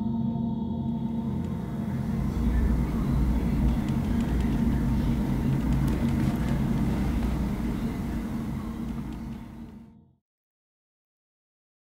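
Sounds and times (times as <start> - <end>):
low droning hum: 0.0 - 10.0
deep low rumble: 1.0 - 9.9.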